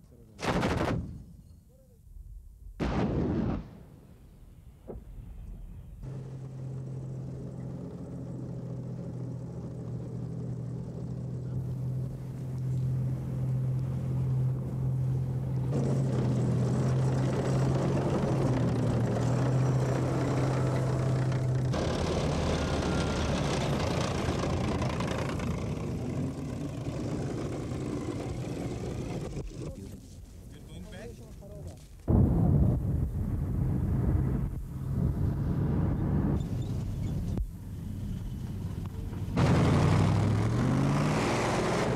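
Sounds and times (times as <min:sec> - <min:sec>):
vehicle engine humming: 0:05.9 - 0:31.3, 0:33.6 - 0:41.9.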